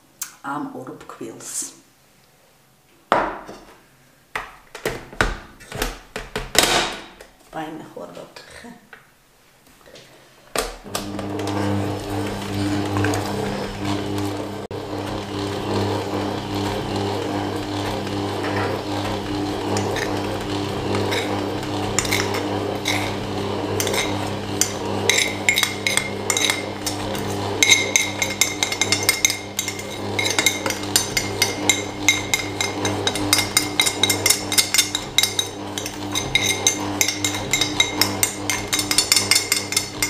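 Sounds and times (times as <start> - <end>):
stand mixer motor humming: 10.8 - 40.0.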